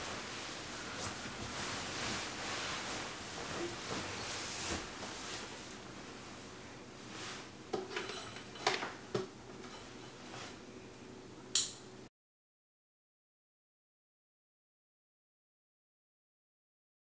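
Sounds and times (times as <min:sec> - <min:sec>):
bedding rustling: 0:00.0 - 0:08.5.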